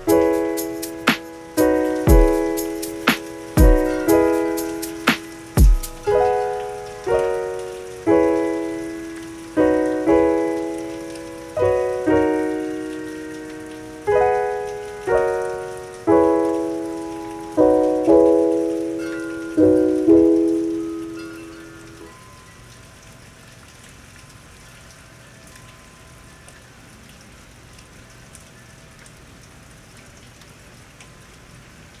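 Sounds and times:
piano chords: 0.0s - 22.6s
rain hissing: 0.0s - 26.8s
rain drops ticking: 0.0s - 32.0s.

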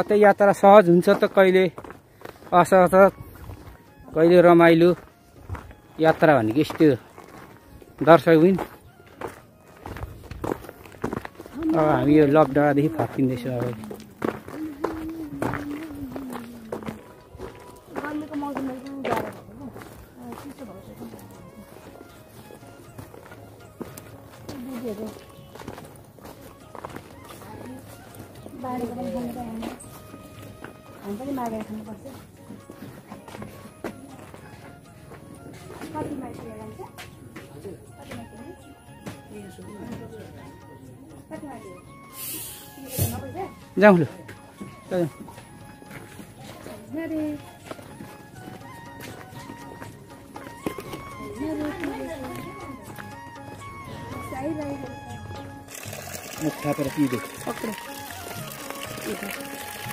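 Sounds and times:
footsteps on dirt path: 0.0s - 59.9s.

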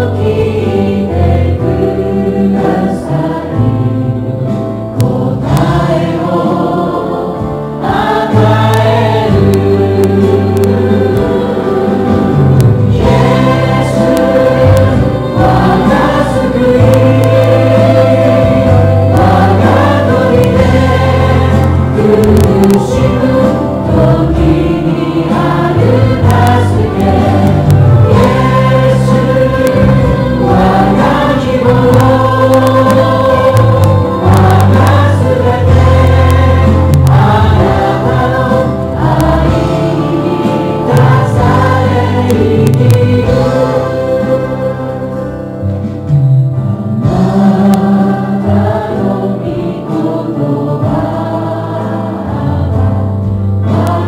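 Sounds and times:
group singing worship song: 0.0s - 46.2s, 47.0s - 54.0s
held bass notes: 0.0s - 54.0s.

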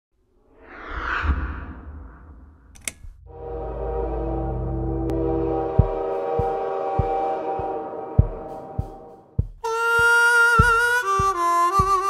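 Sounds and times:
whoosh sound effect: 0.4s - 2.8s
deep rumble: 0.5s - 7.3s.

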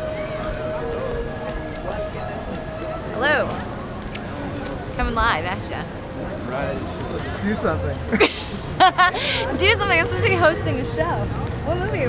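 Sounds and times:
murmur of voices: 0.0s - 12.0s
street noise: 0.0s - 12.0s.

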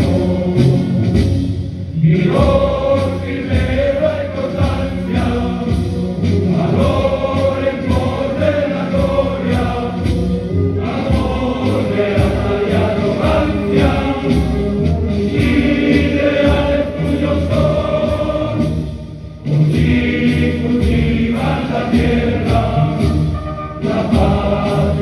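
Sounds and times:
men singing a hymn in chorus: 2.0s - 18.9s, 19.7s - 25.0s.

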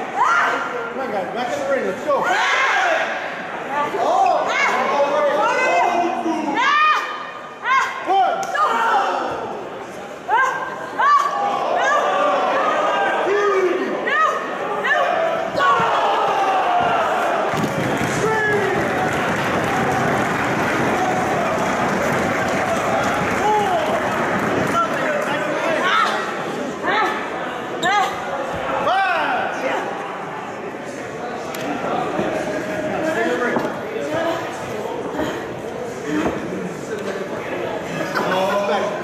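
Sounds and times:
people shouting and yelling: 0.0s - 30.0s
crowd noise: 0.0s - 39.0s.

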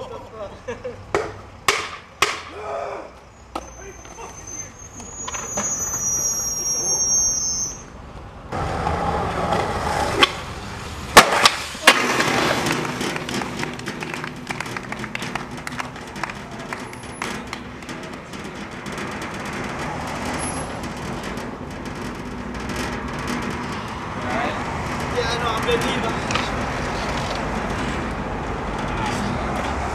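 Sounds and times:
street traffic noise: 0.0s - 29.9s
skateboard rolling on concrete: 3.5s - 29.9s
skateboard and skater hitting ground: 8.6s - 24.4s.

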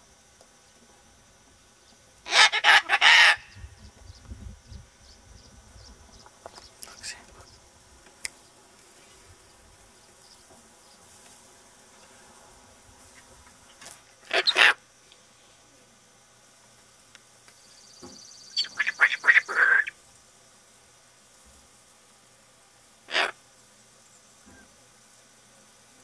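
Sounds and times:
cockatoo squawking: 2.3s - 3.7s, 14.3s - 14.8s, 18.6s - 20.0s, 23.1s - 23.4s.

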